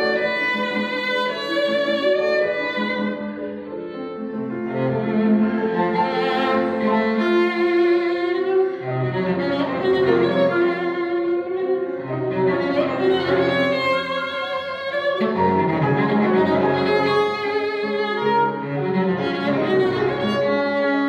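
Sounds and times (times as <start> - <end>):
cello bowing held notes: 0.0 - 21.0
piano chords: 0.0 - 21.0.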